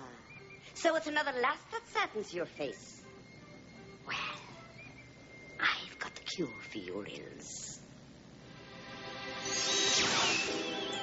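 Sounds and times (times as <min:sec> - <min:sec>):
faint background music: 0:00.0 - 0:11.0
woman whispering: 0:05.6 - 0:06.4.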